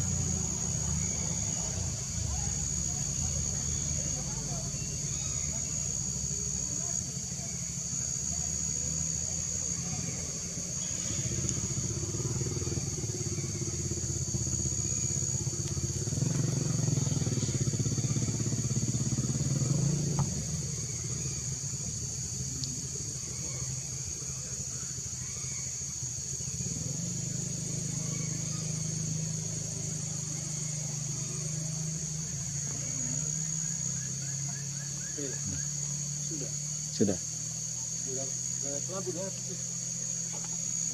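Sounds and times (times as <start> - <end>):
insects buzzing: 0.0 - 40.9.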